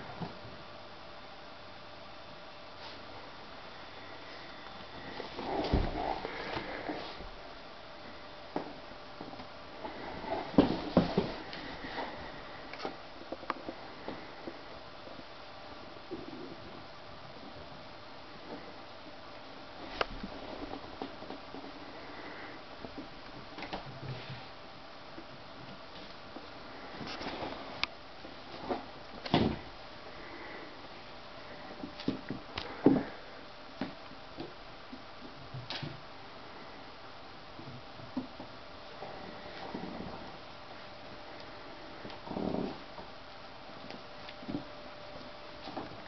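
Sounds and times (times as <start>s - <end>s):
faint room hiss: 0.0s - 46.0s.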